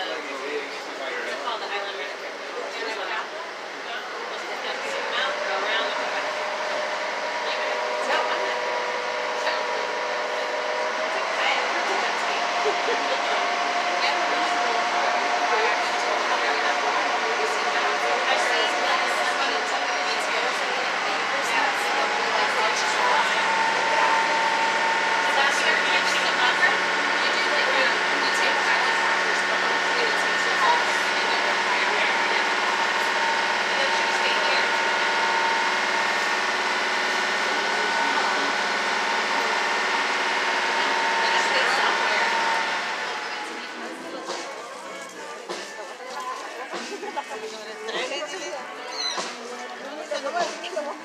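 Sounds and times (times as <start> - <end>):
boat engine droning: 0.0 - 46.0.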